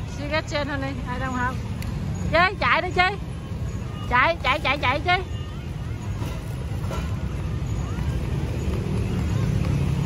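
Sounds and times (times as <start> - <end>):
faint distant voices: 0.0 - 10.0
steady low street rumble: 0.0 - 10.0.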